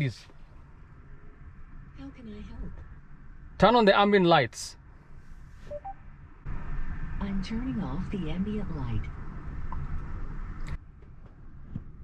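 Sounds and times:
low cabin hum: 0.0 - 12.0.

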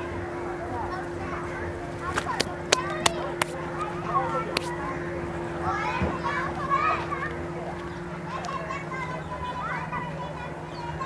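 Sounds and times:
children calling and shouting: 0.0 - 11.0.

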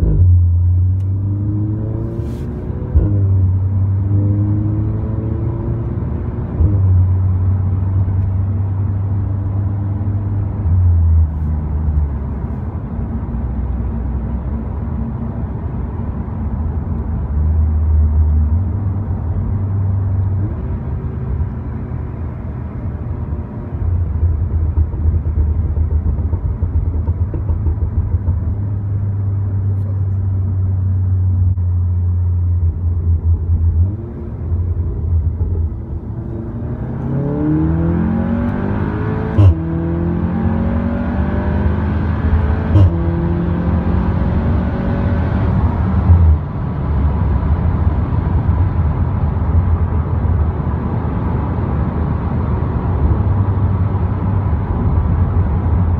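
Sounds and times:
car engine accelerating: 0.0 - 55.9.

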